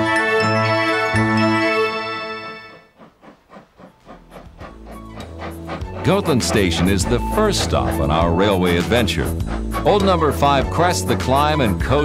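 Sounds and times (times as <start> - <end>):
steam locomotive exhaust chuffing: 2.2 - 12.0.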